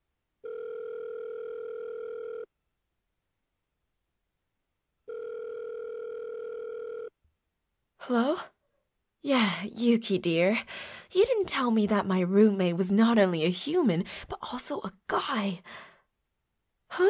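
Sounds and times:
telephone ringing tone: 0:00.4 - 0:02.5, 0:05.1 - 0:07.1.

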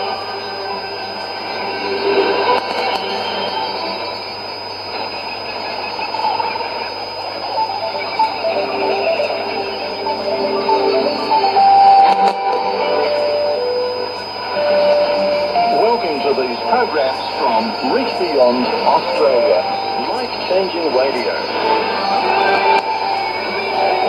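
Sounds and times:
radio music with held notes: 0:00.0 - 0:24.0
static hiss: 0:00.0 - 0:24.0.

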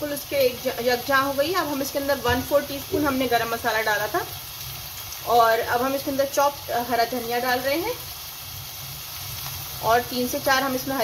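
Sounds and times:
meat sizzling in a frying pan: 0:00.0 - 0:11.0.

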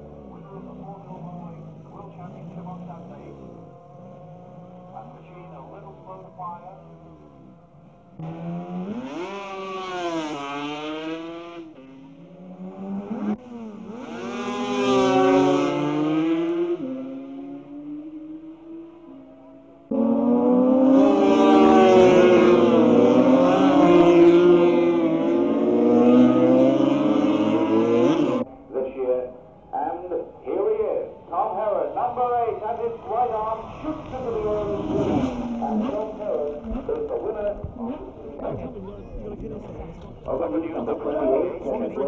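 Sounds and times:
racing motorcycle engines revving: 0:00.0 - 0:28.5, 0:29.7 - 0:42.0.

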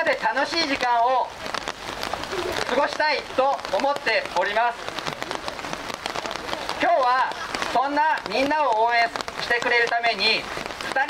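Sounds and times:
rain ticking on umbrellas: 0:00.0 - 0:11.0.

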